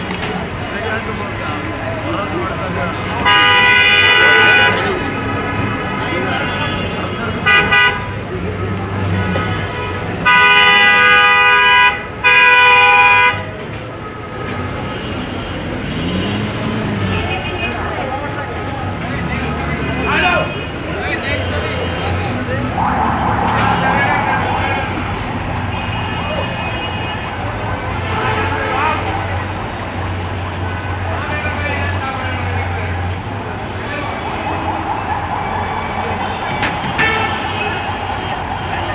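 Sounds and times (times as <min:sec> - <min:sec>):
people's voices: 0:00.0 - 0:10.4, 0:13.6 - 0:38.9
street traffic rumble: 0:00.0 - 0:38.9.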